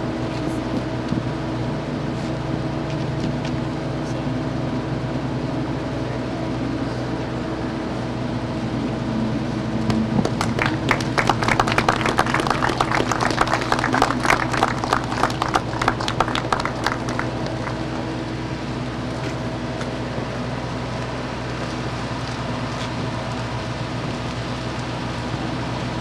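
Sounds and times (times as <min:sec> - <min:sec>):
vehicle engines idling: 0:00.0 - 0:26.0
sharp claps: 0:09.9 - 0:17.8.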